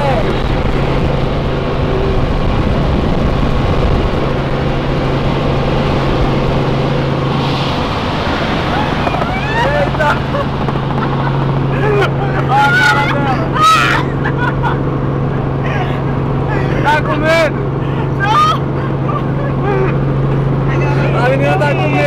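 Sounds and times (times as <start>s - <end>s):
helicopter engine and rotor drone: 0.0s - 22.0s
passengers laughing and exclaiming: 8.6s - 22.0s.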